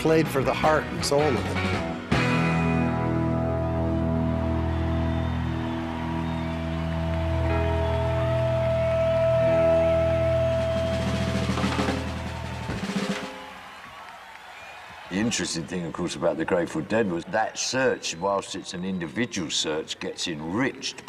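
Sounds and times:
rock band sustained chord: 1.2 - 13.4
drum roll: 10.3 - 13.8.

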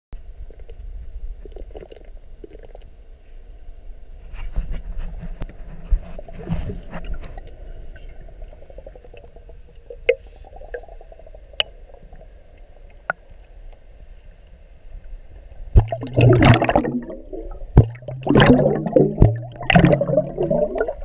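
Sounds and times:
underwater water rumble: 0.2 - 21.0.

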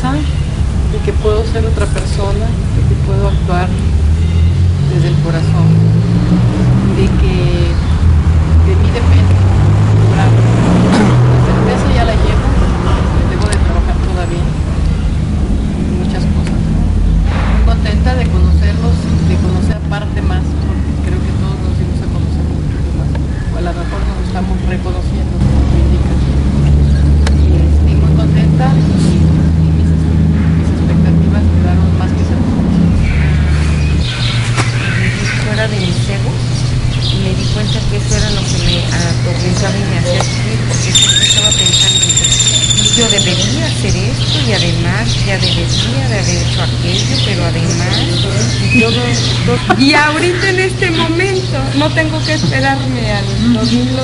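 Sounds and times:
woman talking: 0.0 - 3.8, 4.8 - 5.9, 6.8 - 7.9, 8.6 - 14.6, 15.9 - 16.6, 17.6 - 29.9, 30.7 - 32.9, 35.0 - 54.0
loud steady low drone: 0.0 - 34.0.

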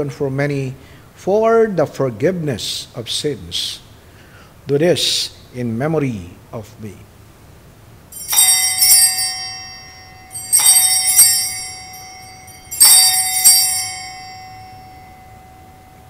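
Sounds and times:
altar bells ringing: 8.1 - 16.0.

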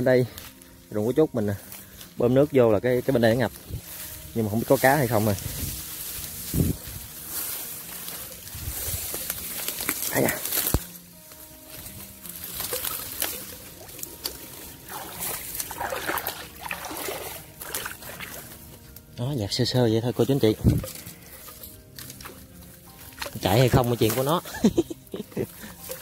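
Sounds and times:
dry straw rustling and crackling: 0.0 - 26.0
water sloshing: 12.2 - 18.8, 22.2 - 24.5.

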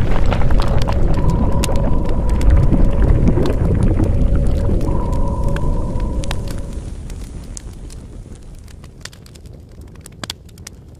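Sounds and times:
faint steady hum: 0.0 - 8.7
deep rumble: 0.0 - 9.2
scattered crackles: 0.0 - 10.9.

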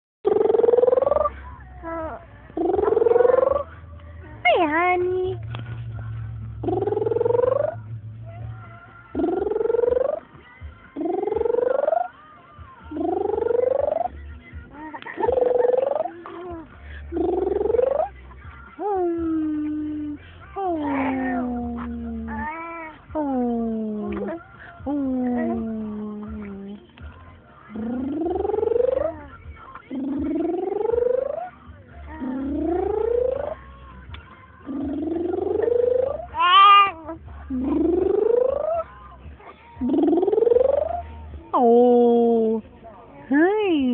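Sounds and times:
voice making whining calls: 0.3 - 3.8, 6.6 - 8.5, 11.0 - 12.2, 12.8 - 14.2, 15.0 - 18.2, 27.7 - 31.6, 34.6 - 39.0, 39.8 - 41.4.

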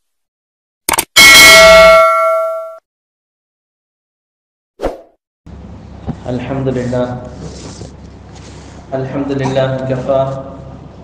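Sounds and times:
notification bell ding: 1.2 - 2.8.

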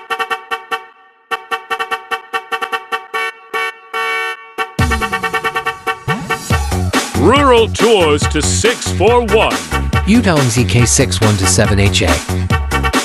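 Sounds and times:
staccato horn-like notes: 0.0 - 11.6
music with heavy bass: 4.8 - 13.0.

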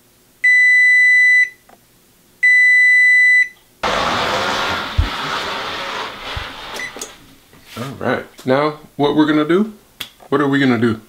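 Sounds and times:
kitchen timer long beeps: 0.4 - 1.6, 2.4 - 3.6.

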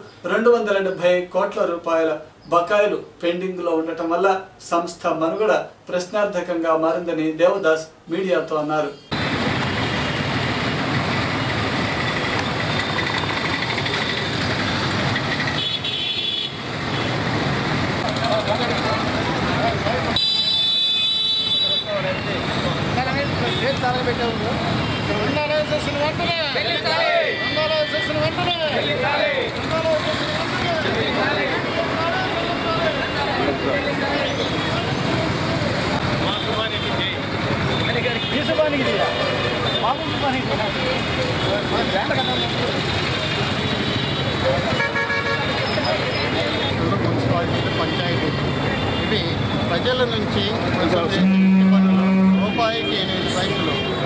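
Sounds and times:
street traffic: 0.0 - 54.0
vehicle horn tooting: 15.6 - 17.1, 20.2 - 22.4, 43.3 - 46.6, 51.1 - 54.0
crowd voices: 21.9 - 54.0
marching crowd calling out: 26.5 - 35.0.

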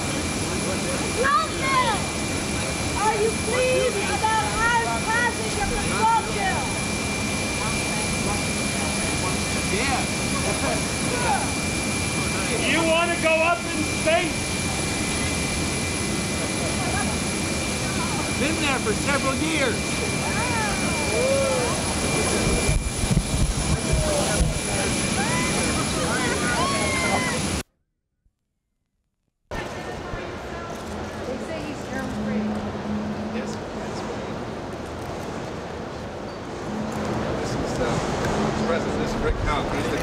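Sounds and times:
jet engines running: 0.0 - 27.6, 29.5 - 40.0.

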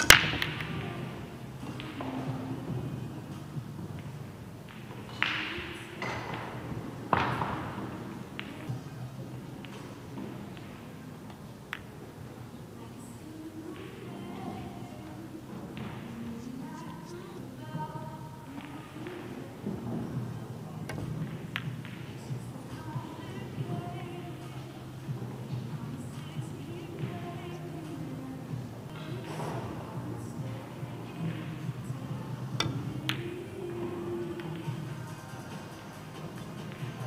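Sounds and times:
pool balls striking: 0.0 - 12.8, 13.4 - 37.0.

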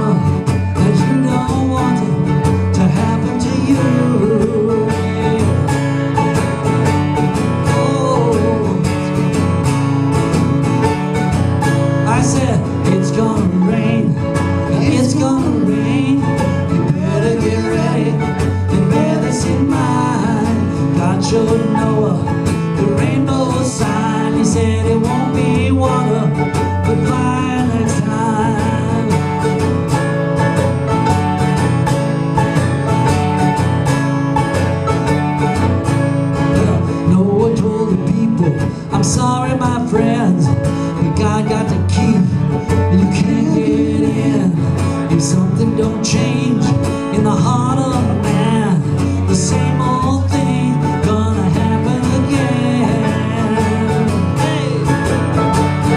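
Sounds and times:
acoustic guitar strumming: 0.0 - 55.9
mandolin picking: 0.0 - 55.9.

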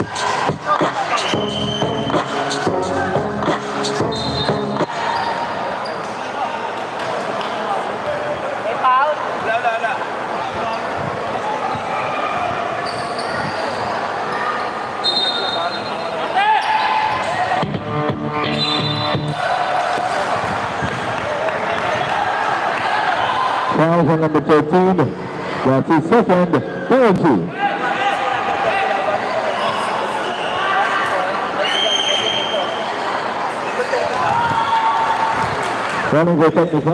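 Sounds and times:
music: 0.0 - 5.0, 17.6 - 19.4
murmur of voices: 0.0 - 36.9.

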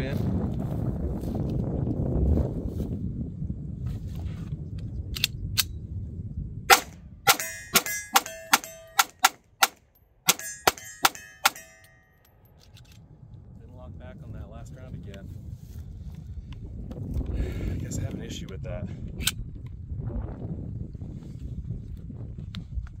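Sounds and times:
wind buffeting microphone: 0.0 - 8.2, 12.8 - 23.0
pistol shots with metallic ring: 6.7 - 12.5.

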